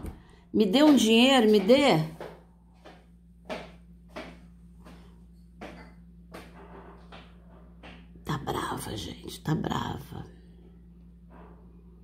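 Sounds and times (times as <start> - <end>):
woman's footsteps in hallway: 0.0 - 8.7
faint steady hum: 0.0 - 12.0.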